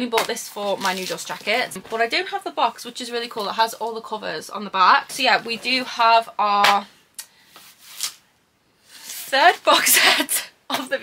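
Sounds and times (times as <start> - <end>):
plastic wrap rubbing: 0.4 - 1.8.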